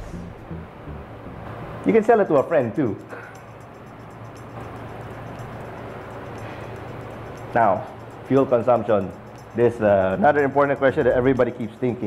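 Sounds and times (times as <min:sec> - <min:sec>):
low hum: 0:00.0 - 0:01.9
soft hiss: 0:00.0 - 0:03.0
faint background music: 0:00.0 - 0:12.0.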